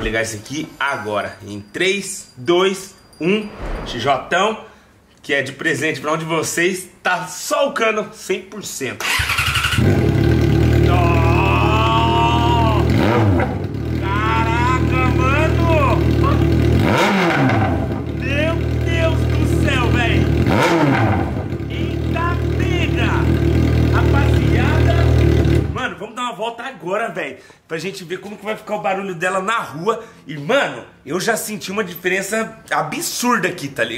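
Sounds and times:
motorcycle engine revving: 9.0s - 14.1s, 14.8s - 25.8s.

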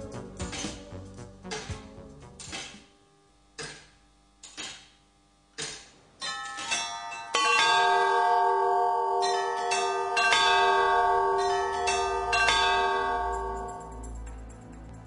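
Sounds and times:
bells ringing: 6.2s - 14.3s.

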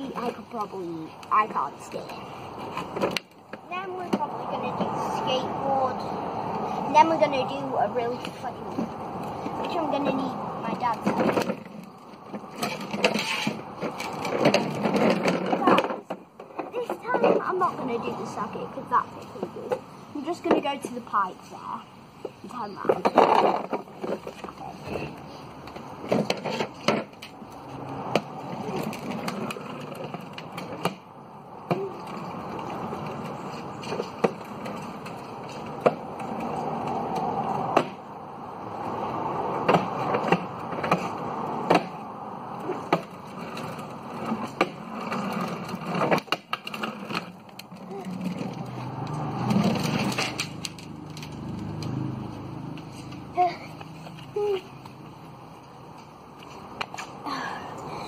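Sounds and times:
plastic wheels rolling on tarmac: 0.0s - 58.0s.

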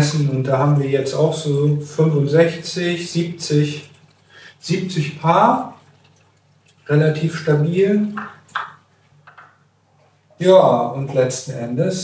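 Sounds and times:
water splashes and drips: 2.2s - 9.4s.

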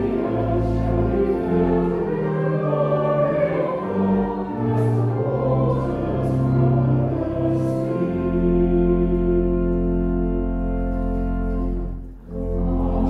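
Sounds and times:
congregation singing a hymn: 0.0s - 13.0s
low accompaniment: 0.0s - 13.0s.

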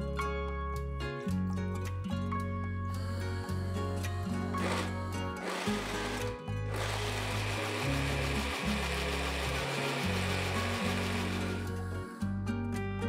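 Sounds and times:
background music: 0.0s - 13.0s
hand blender whirring: 4.6s - 11.7s.

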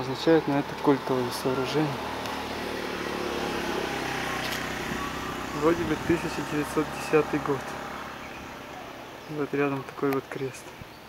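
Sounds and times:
vehicle engine humming: 0.0s - 10.8s.

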